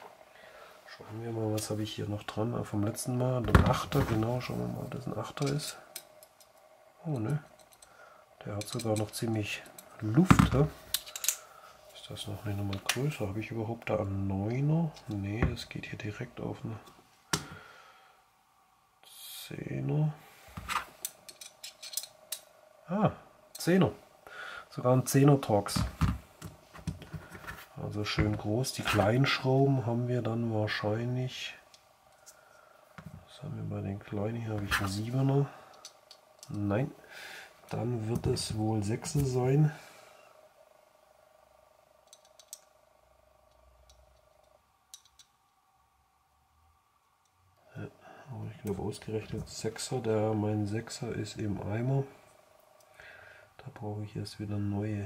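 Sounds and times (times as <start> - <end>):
faint steady hum: 0.0 - 55.0
small sharp metallic clicks: 10.9 - 11.5, 42.0 - 42.7, 43.4 - 45.6.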